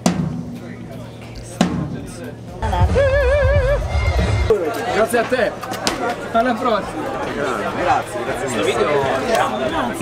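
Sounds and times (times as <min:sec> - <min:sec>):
drum hits: 0:00.0 - 0:00.8, 0:01.6 - 0:04.5
heavy bass-drum beat: 0:00.0 - 0:04.5
held wavering note: 0:02.6 - 0:04.5.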